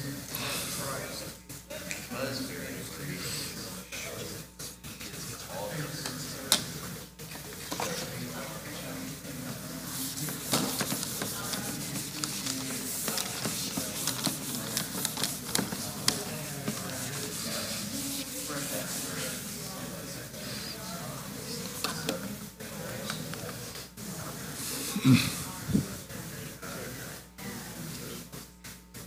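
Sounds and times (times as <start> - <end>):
indistinct chatter of many people: 0.0 - 29.0
eraser rubbing on whiteboard: 2.6 - 29.0.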